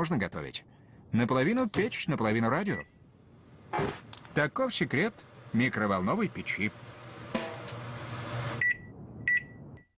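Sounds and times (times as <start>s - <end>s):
microwave oven humming: 4.9s - 8.8s
microwave electronic beeps: 8.6s - 10.0s.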